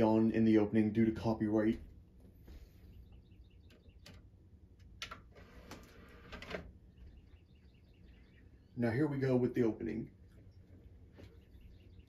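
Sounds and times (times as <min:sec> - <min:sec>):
faint bird chirps: 0:02.5 - 0:04.4, 0:06.8 - 0:12.0.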